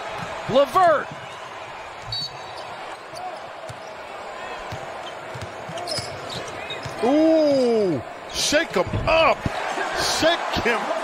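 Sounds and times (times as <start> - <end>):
sneaker squeaks: 2.0 - 4.0, 5.0 - 7.0.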